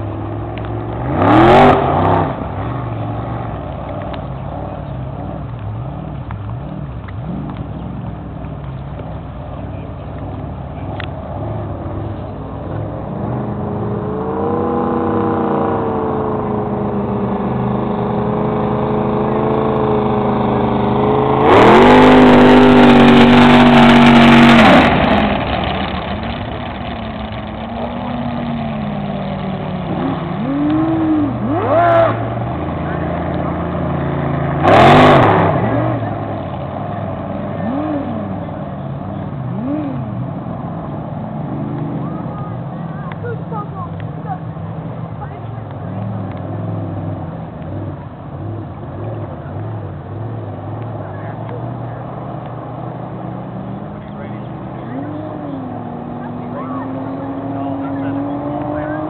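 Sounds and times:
racing powerboat engines: 0:00.0 - 0:59.0.

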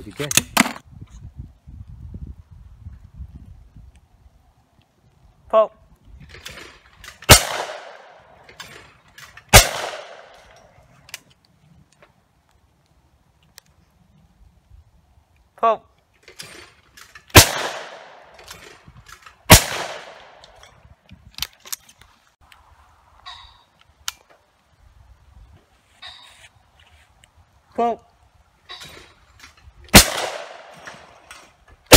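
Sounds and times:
shotgun shots with echo: 0:07.3 - 0:08.3, 0:09.5 - 0:10.4, 0:17.3 - 0:18.3, 0:19.5 - 0:20.4, 0:29.9 - 0:30.8.

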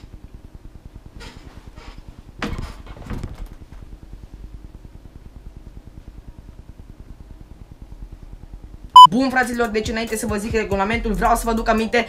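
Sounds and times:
room noise with fast flutter: 0:00.0 - 0:09.1.

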